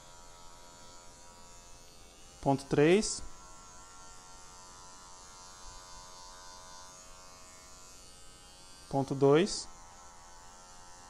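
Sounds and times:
electric hair clipper buzzing: 0.0 - 11.0.

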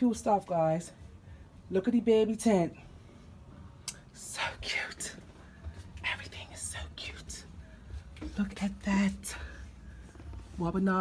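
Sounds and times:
low steady hum: 0.0 - 11.0
person whispering: 4.2 - 5.3, 6.0 - 9.5.

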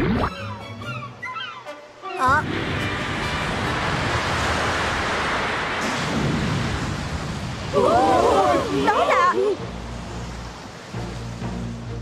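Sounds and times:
sea water and surf rushing: 0.0 - 12.0
voices shouting: 7.7 - 9.6.

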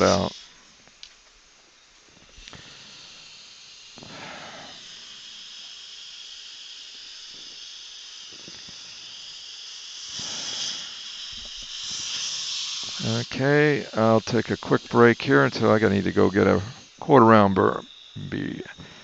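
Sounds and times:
dental drill high hiss: 0.0 - 19.0.

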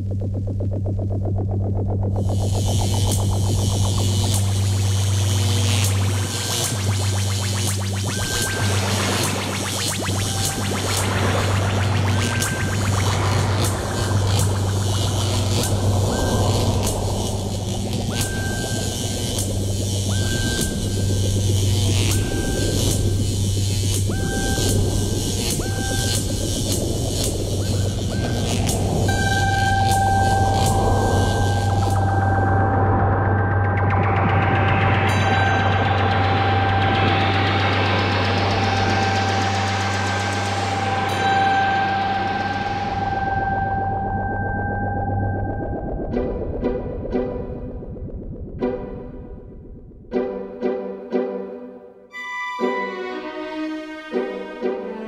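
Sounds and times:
low electronic drone: 0.0 - 51.2.

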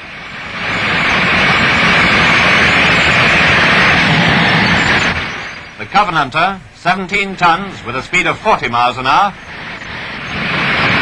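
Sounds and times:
tank engine and tracks: 0.0 - 11.0.

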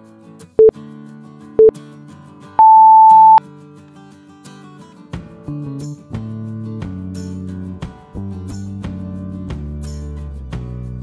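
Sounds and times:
interval timer beeps: 2.6 - 3.4.

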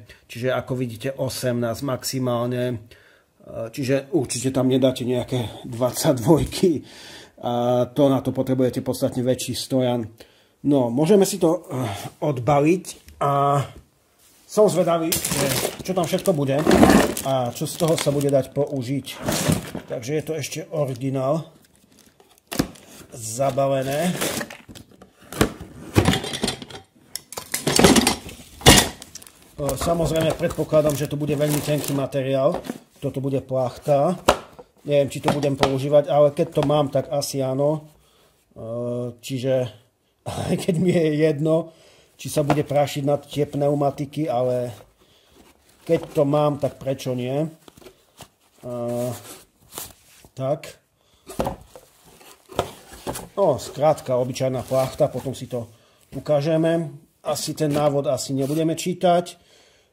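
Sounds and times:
plastic wrapping rustling: 14.4 - 26.4, 27.3 - 35.8, 51.4 - 55.6
metal parts clanking and rattling: 26.0 - 29.0.

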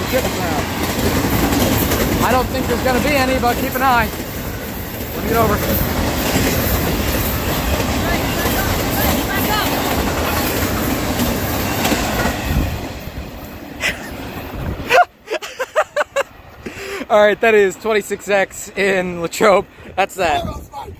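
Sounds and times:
freight train rolling past: 0.0 - 20.9.

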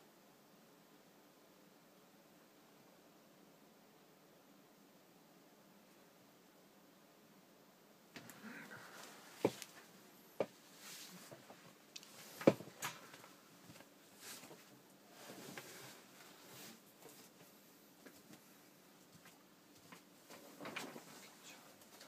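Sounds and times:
soft rustling: 8.2 - 22.0.

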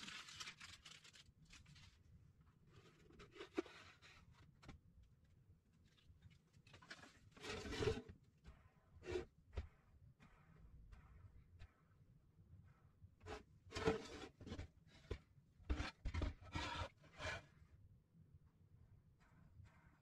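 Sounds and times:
plastic foil peeling and crinkling: 0.0 - 2.0
rustling scrape: 6.7 - 8.1, 13.3 - 17.4.

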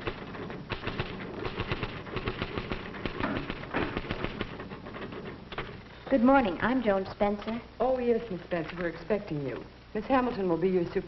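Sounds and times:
typewriters clattering: 0.0 - 7.6.

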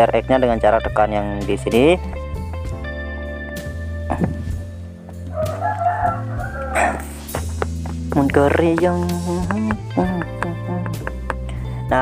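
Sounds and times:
background music with low tones: 0.0 - 12.0
animal call with wavering pitch: 5.4 - 7.2.

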